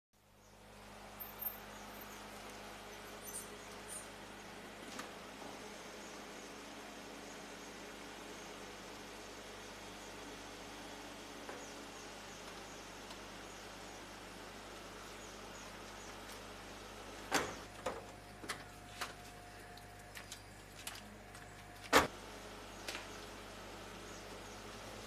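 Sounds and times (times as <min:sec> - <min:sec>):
small high chirps: 0:03.0 - 0:04.2.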